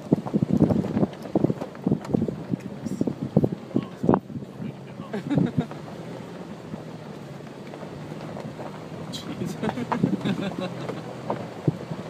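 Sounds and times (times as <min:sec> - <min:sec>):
car engine drone: 0:00.0 - 0:12.0
tyre and road noise: 0:00.0 - 0:12.0.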